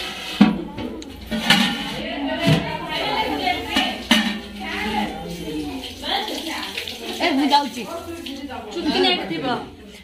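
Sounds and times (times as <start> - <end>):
people talking: 0.3 - 10.0.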